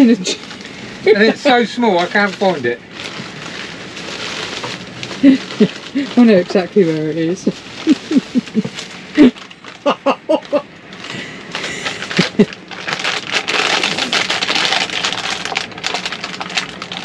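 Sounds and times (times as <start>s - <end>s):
people laughing: 1.1s - 1.7s, 7.8s - 10.6s, 11.7s - 12.5s
plastic packaging crinkling: 1.4s - 17.0s.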